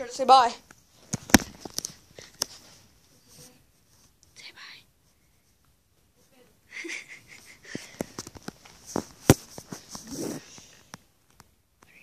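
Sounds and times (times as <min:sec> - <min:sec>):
person whispering: 0:04.4 - 0:04.9.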